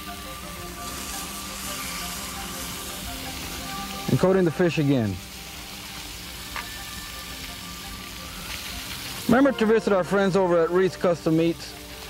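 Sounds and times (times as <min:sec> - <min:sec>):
fish sizzling on a grill: 0:00.0 - 0:12.0
soft background music: 0:00.0 - 0:12.0.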